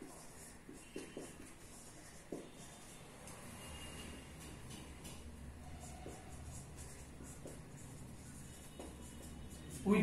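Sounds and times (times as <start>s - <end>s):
soft marker taps: 0.0s - 3.4s, 4.4s - 9.8s
marker scratching on whiteboard: 0.0s - 10.0s.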